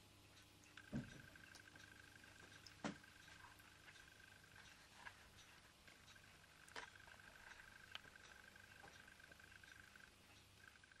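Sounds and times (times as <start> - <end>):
faint ticks: 0.3 - 11.0.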